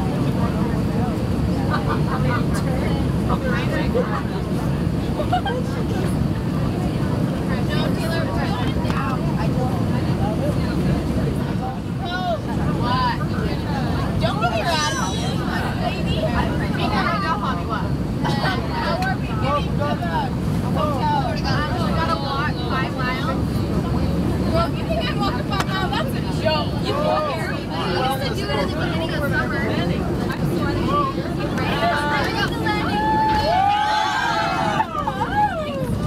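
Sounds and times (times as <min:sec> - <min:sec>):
aircraft engines and airflow: 0:00.0 - 0:36.0
passengers chattering: 0:00.0 - 0:36.0.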